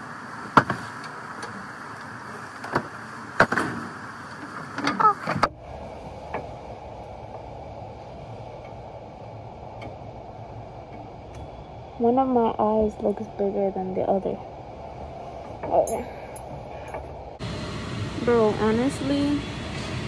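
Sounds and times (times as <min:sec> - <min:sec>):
warehouse background hum: 0:00.0 - 0:20.0.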